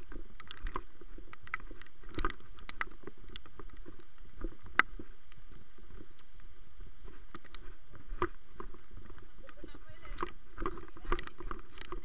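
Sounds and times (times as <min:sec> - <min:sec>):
camera rumble: 0:00.0 - 0:12.0
footsteps on muddy ground: 0:07.0 - 0:12.0.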